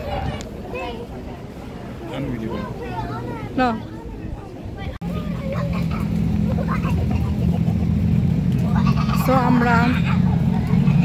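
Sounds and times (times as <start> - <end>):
faint voices: 0.0 - 11.0
vehicle engine running: 5.1 - 11.0.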